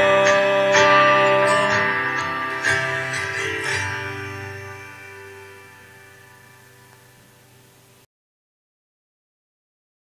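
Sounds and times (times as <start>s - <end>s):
acoustic guitar strumming: 0.0s - 8.0s
guitar chord ringing: 0.0s - 8.0s.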